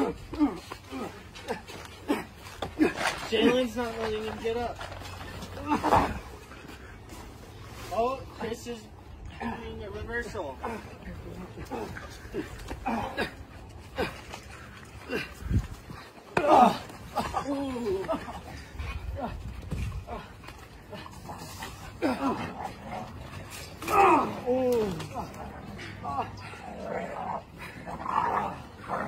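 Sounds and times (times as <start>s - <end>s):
man exclaiming and speaking: 3.2s - 4.8s, 7.9s - 11.9s.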